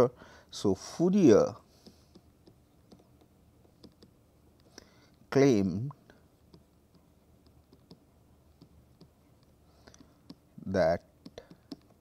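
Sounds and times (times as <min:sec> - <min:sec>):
stylus tapping on pen tablet: 0:01.8 - 0:04.8, 0:06.4 - 0:10.5, 0:11.2 - 0:12.0.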